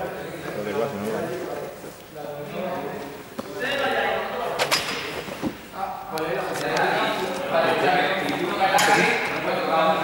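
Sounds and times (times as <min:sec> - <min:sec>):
young men talking in echoing hall: 0:00.0 - 0:10.0.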